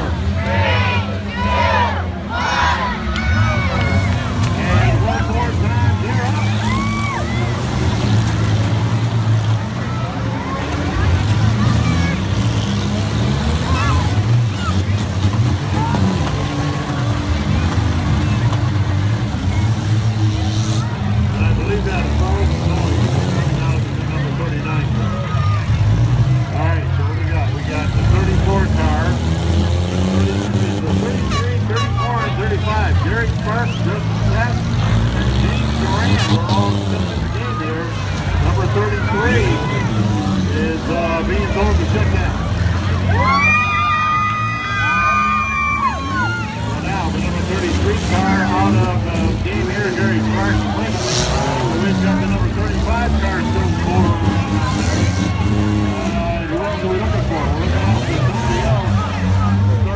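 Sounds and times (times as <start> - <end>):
car engines revving: 0.0 - 59.9
cars crashing: 0.0 - 59.9
crowd shouting and cheering: 0.0 - 59.9.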